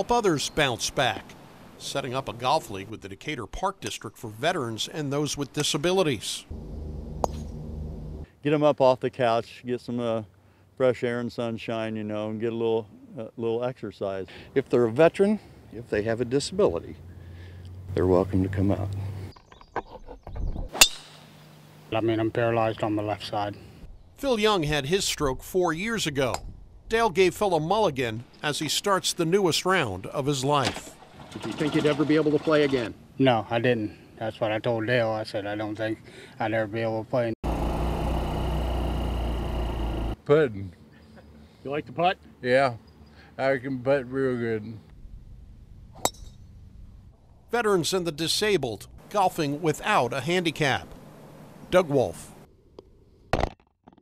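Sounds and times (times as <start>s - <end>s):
golf club striking ball: 7.1s - 7.7s, 20.7s - 21.4s, 46.0s - 46.6s.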